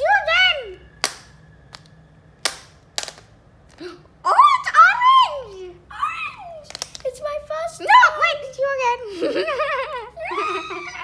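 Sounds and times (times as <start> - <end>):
small hard objects knocking on tile: 1.0 - 3.3.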